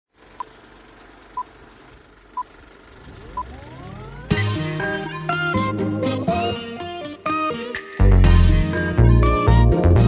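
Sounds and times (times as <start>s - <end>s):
high electronic beeps: 2.4s - 4.7s
rising pitch sweep: 2.9s - 6.5s.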